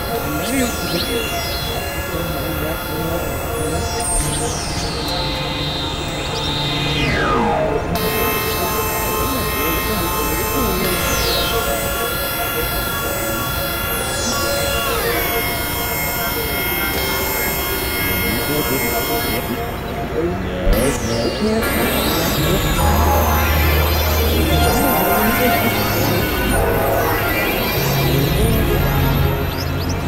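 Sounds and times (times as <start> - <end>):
falling synthesizer pitch sweeps: 0.0 - 20.1, 20.7 - 30.0
layered synthesizer drone: 0.0 - 30.0.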